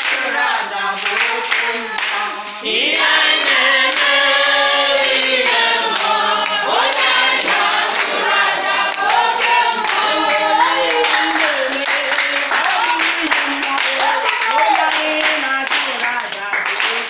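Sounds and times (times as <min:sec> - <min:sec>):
hands clapping: 0:00.0 - 0:17.0
women singing in chorus: 0:00.0 - 0:17.0.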